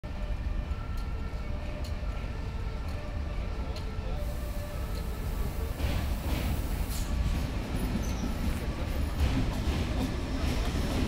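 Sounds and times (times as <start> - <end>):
train rumbling over bridge: 0.0 - 11.0.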